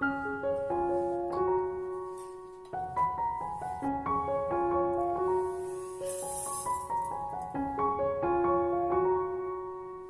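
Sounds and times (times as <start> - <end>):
gentle piano melody: 0.0 - 10.0.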